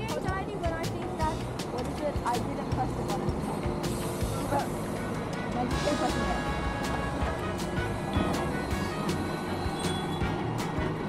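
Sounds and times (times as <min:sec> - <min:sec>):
background music: 0:00.0 - 0:11.0
bus idling: 0:00.0 - 0:11.0.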